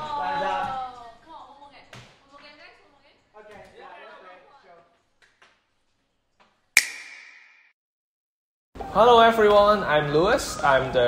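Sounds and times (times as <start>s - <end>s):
sharp click with ringing tone: 6.8s - 7.6s.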